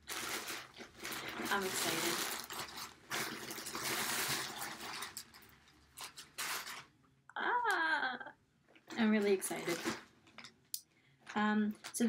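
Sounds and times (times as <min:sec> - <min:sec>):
plastic mailer bag crinkling: 0:00.0 - 0:07.0, 0:08.8 - 0:10.5, 0:11.2 - 0:12.0
sharp plastic crackles: 0:00.0 - 0:07.0, 0:08.7 - 0:12.0.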